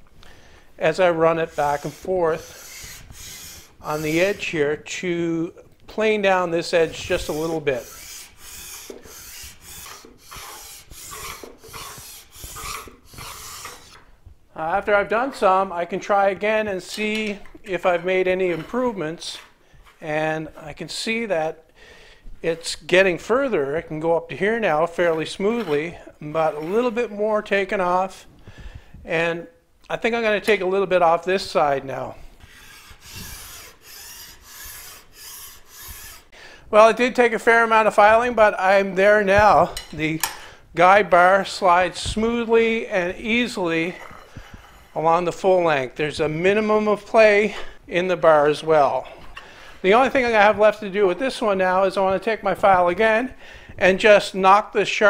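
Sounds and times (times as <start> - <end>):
file rasping on metal: 1.3 - 4.6, 6.6 - 14.0, 32.4 - 36.4.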